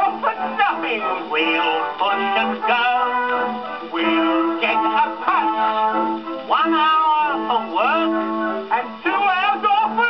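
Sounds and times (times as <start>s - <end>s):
novelty song on gramophone: 0.0s - 10.0s.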